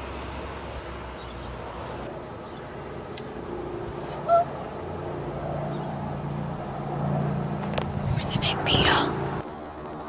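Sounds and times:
distant engine humming: 0.0s - 10.0s.

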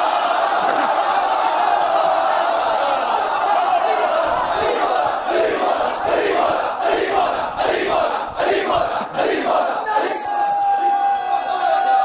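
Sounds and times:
crowd of men shouting slogan: 0.0s - 12.0s.

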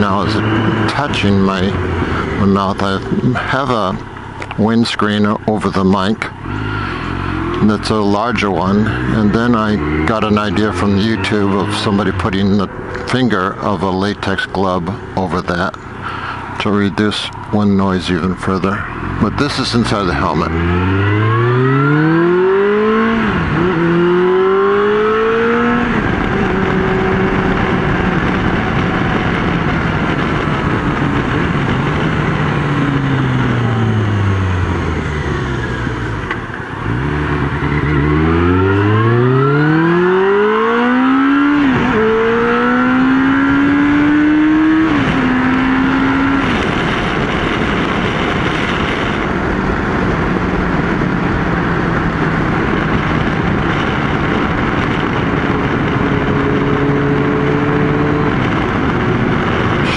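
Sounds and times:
motorcycle engine shifting gears: 0.0s - 16.6s, 18.7s - 59.9s
wind noise: 0.0s - 59.9s.

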